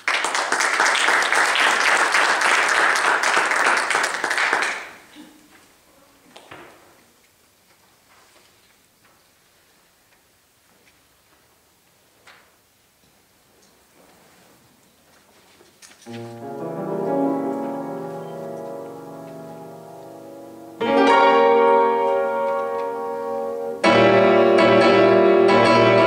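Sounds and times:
piano chord ringing: 16.1 - 26.0.

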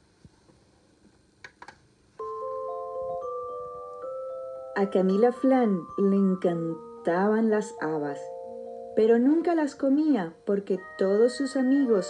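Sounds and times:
glockenspiel-like melody: 2.2 - 12.0.

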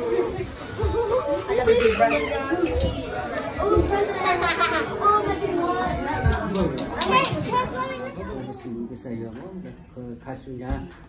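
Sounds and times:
children excitedly chattering: 0.0 - 9.2.

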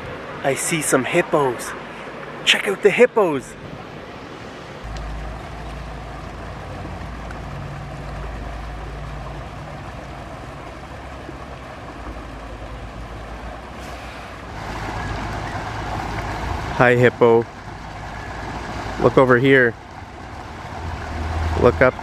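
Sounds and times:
outdoor background noise: 0.0 - 22.0
low engine hum: 3.6 - 22.0.

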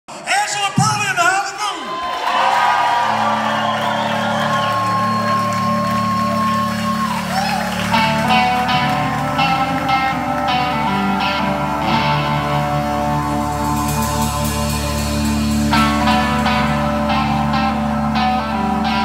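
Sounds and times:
bass line: 3.2 - 19.0
electric guitars ringing: 3.2 - 19.0
drums steady beat: 13.1 - 17.4.

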